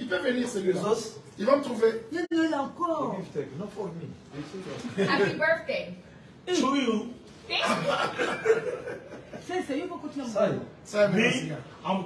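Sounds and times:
people talking: 3.6s - 5.9s, 6.5s - 12.0s
people laughing: 7.5s - 9.5s.

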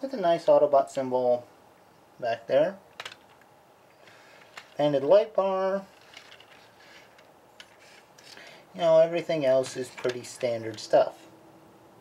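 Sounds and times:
soft rubbing of plastic toy: 5.8s - 8.5s.

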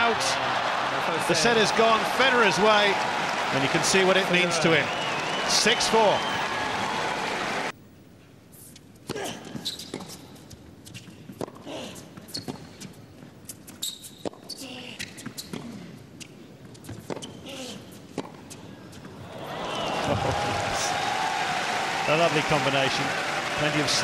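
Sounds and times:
crowd applause: 0.0s - 7.7s, 19.2s - 24.0s
shoes squeaking on court: 9.5s - 11.6s, 12.2s - 19.2s.

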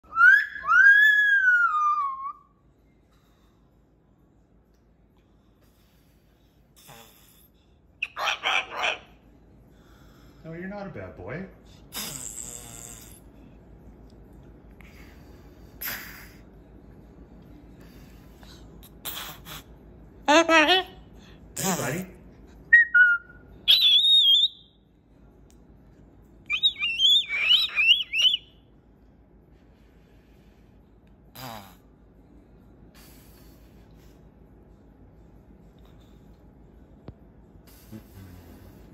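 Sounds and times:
cockatoo raspy calls: 8.0s - 9.2s, 26.5s - 28.4s.

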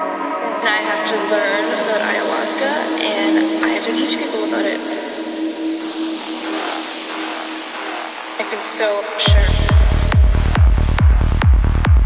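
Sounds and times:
held synth drone: 0.0s - 11.4s
spoken voice sample: 0.6s - 5.1s, 8.4s - 9.9s
rising noise sweep: 3.3s - 8.4s.

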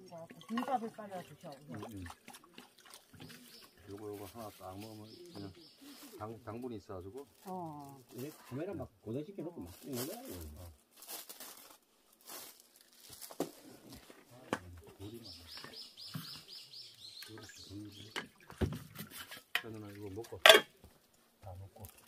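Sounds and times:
dishes and utensils clinking: 20.4s - 20.7s.

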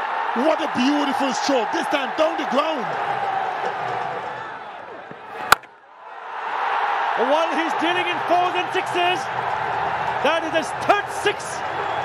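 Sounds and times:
stadium crowd noise: 0.0s - 12.0s
cricket bat striking ball: 5.4s - 5.8s.

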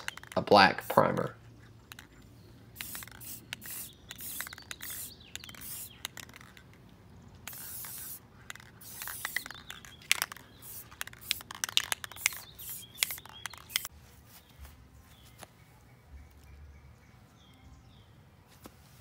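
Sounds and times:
spray paint can hissing: 0.0s - 1.0s, 1.9s - 2.1s, 2.7s - 6.7s, 7.4s - 13.9s
sharp clicks and ticks: 0.0s - 13.9s.

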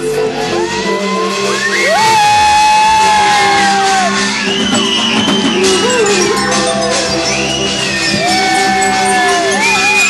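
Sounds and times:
live amplified band music: 0.0s - 10.0s.

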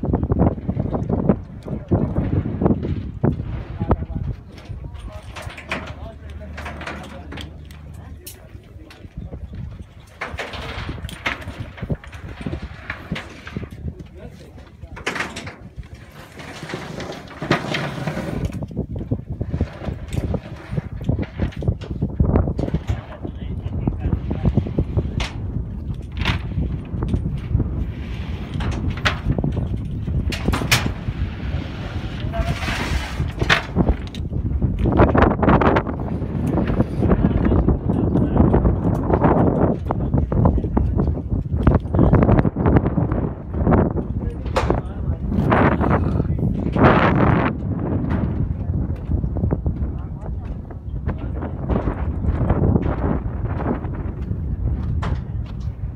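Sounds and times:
low rumble: 0.0s - 55.9s
cable clanks and knocks: 0.4s - 31.1s, 32.2s - 55.9s
workers' voices: 1.5s - 18.4s, 31.9s - 34.0s, 36.5s - 42.4s, 44.0s - 53.1s.

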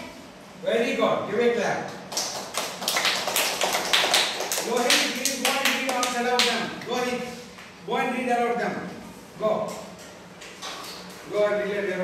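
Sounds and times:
children clapping together: 2.1s - 6.6s.

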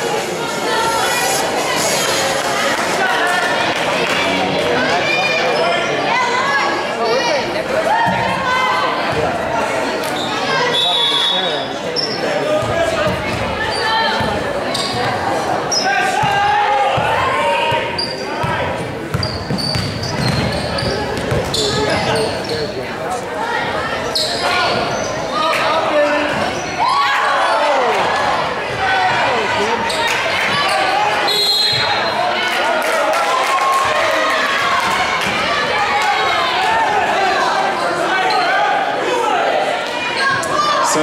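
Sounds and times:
sneakers squeaking on floor: 10.1s - 16.3s, 17.7s - 22.8s, 24.0s - 25.3s.

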